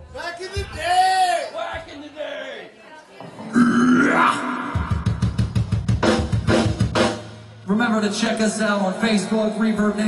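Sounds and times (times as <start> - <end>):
fast drum strokes: 4.6 - 7.7.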